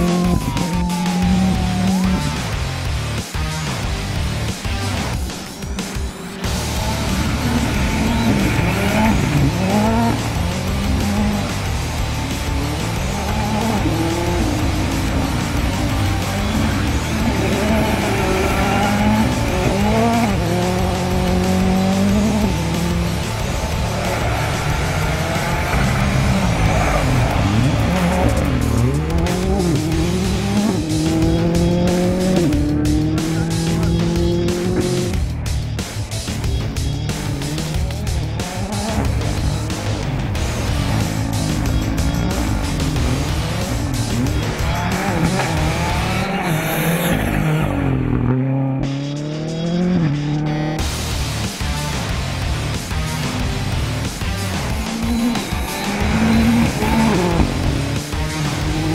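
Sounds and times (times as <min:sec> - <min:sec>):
car engine revving: 0:00.0 - 0:58.9
music playing: 0:00.0 - 0:58.9.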